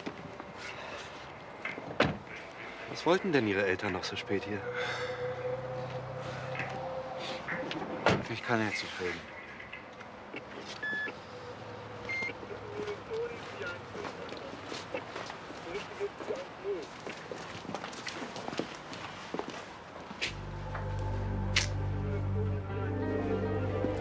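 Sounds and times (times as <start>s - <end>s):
short beeps: 12.1s - 12.4s
film score music with low bass: 20.3s - 24.0s.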